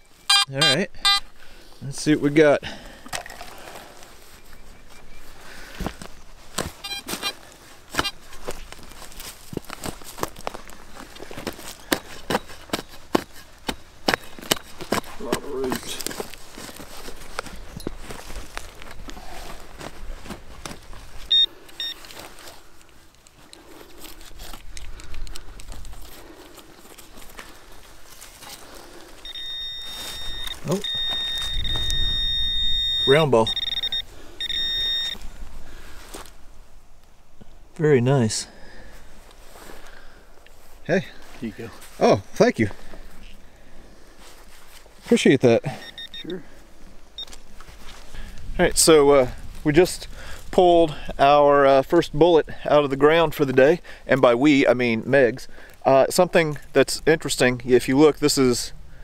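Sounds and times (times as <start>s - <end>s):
short beep: 0.2s - 1.3s, 6.8s - 7.4s, 21.3s - 22.0s, 29.2s - 35.2s, 45.7s - 46.4s
metal detector buzzing tone: 0.3s - 1.3s, 6.8s - 7.4s, 21.3s - 22.1s, 29.2s - 35.2s, 45.8s - 46.3s
digging tool striking dry soil: 11.4s - 18.1s.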